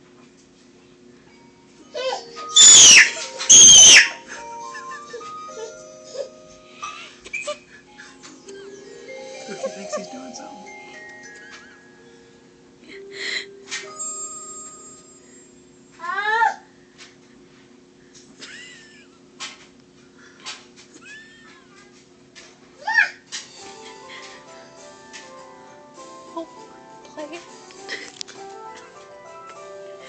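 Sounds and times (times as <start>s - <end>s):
gentle children's music from tv: 0.1s - 15.3s, 21.5s - 30.0s
toddler squealing: 2.0s - 4.3s
baby vocalizing excitedly: 2.6s - 4.2s.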